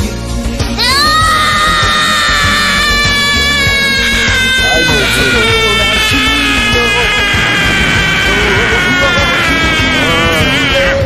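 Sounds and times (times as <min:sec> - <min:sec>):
anime background music: 0:00.0 - 0:11.0
long high strained scream: 0:00.8 - 0:11.0.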